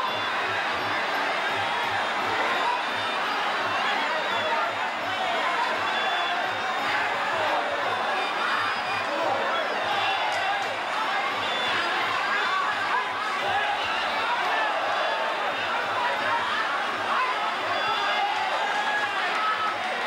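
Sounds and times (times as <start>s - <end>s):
crowd chatter and shouts: 0.0s - 20.0s.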